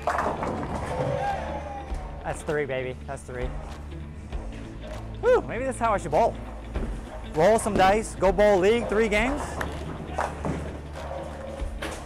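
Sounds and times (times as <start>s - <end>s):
bowling pins clattering: 0.0s - 1.3s, 6.5s - 12.0s
background music: 0.0s - 12.0s.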